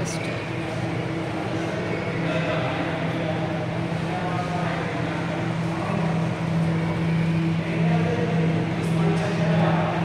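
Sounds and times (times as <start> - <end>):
constant noisy background: 0.0 - 10.0
steady low hum: 0.0 - 10.0.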